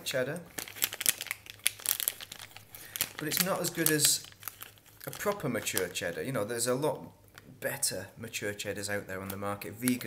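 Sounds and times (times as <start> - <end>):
plastic wrapping crinkling: 0.0 - 6.4, 8.8 - 10.0.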